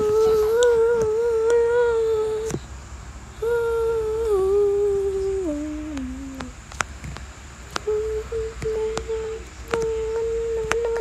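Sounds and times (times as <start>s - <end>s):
person humming: 0.0s - 2.6s, 3.4s - 6.6s, 7.8s - 11.0s.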